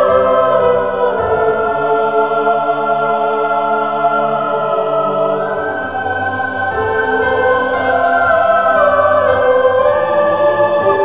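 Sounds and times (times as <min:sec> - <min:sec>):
choir holding long chords: 0:00.0 - 0:11.0.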